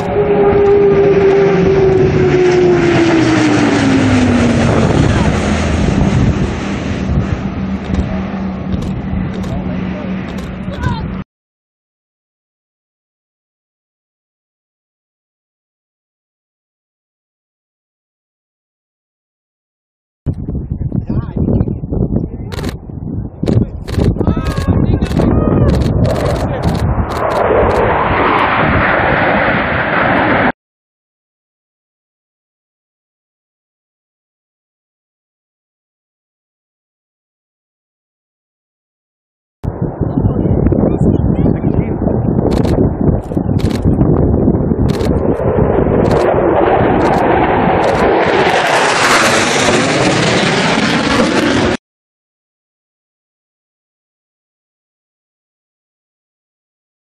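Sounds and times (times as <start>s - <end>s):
low rumble: 0.0s - 11.2s, 20.3s - 30.6s, 39.6s - 51.8s
low-flying military aircraft: 0.0s - 11.2s, 20.3s - 30.5s, 39.7s - 51.8s
wind buffeting microphone: 0.0s - 11.2s, 20.3s - 30.5s, 39.6s - 51.7s
people talking: 4.8s - 5.4s, 9.3s - 11.2s, 20.3s - 26.8s, 40.0s - 43.8s
camera shutter: 42.5s - 43.9s, 44.9s - 45.1s, 47.8s - 48.0s.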